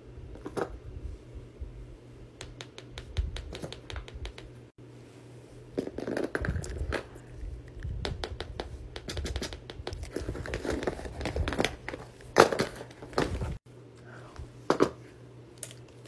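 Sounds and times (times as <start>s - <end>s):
plastic toys crinkling and rustling: 10.0s - 13.6s.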